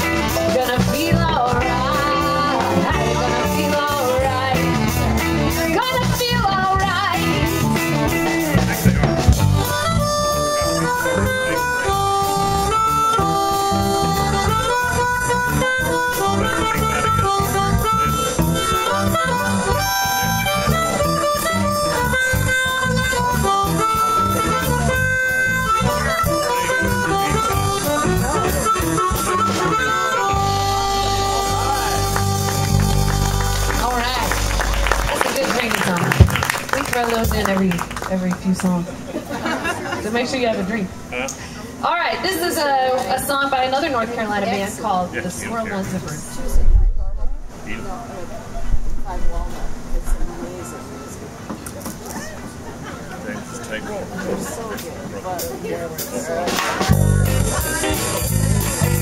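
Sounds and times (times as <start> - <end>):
amplified harmonica solo: 0.0 - 36.5, 56.8 - 59.0
live blues band: 0.0 - 47.6, 48.4 - 59.0.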